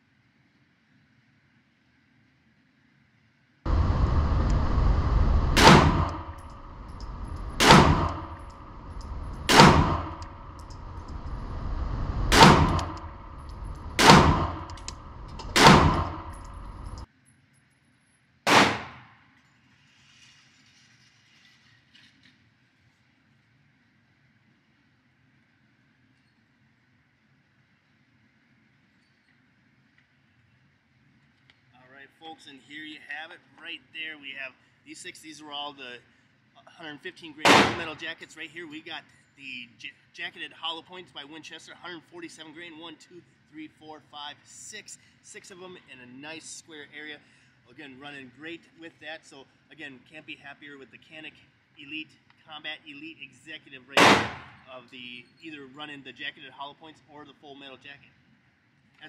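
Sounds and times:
steady rushing noise: 3.7s - 17.1s
pistol shots ringing off walls: 7.0s - 8.6s, 9.3s - 10.5s, 13.9s - 17.0s, 18.5s - 19.1s, 37.4s - 38.0s, 54.0s - 54.6s.

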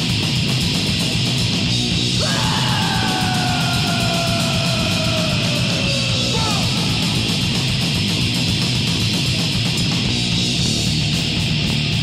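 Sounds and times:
thrash metal band music: 0.0s - 12.0s.

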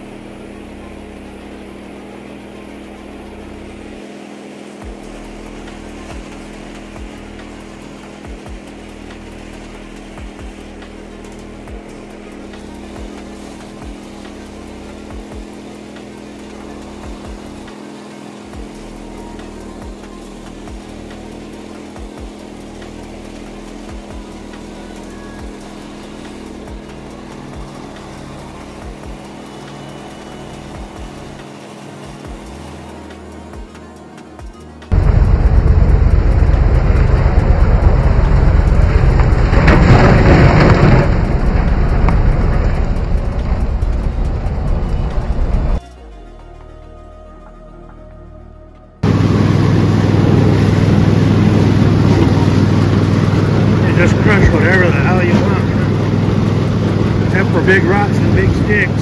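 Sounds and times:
riding mower engine running: 0.0s - 46.2s, 49.0s - 59.0s.

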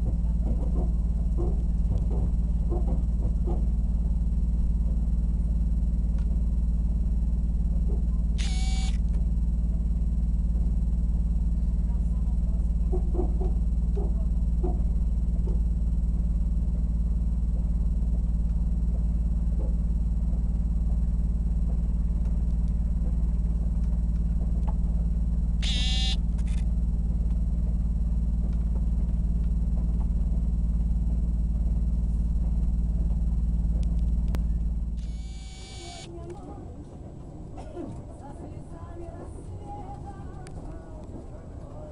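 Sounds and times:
train running noise inside carriage: 0.0s - 8.4s, 11.4s - 41.9s.

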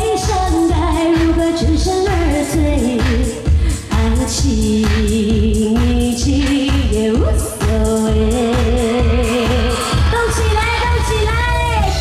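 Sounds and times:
backing music with drum beat: 0.0s - 12.0s
woman singing pop song: 0.0s - 12.0s.

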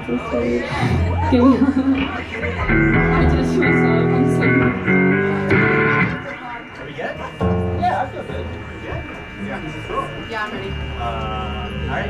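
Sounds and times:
quiet chattering voices: 0.0s - 12.0s
guitar chords through pa: 0.8s - 9.4s.

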